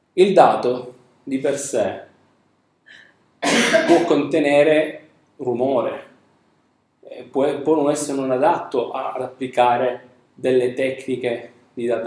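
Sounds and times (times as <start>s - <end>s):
man coughing: 3.4s - 4.2s.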